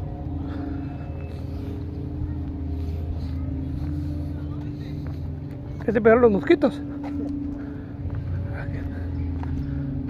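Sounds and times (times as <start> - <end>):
engine idling: 0.0 - 10.0
faint voices: 0.0 - 10.0.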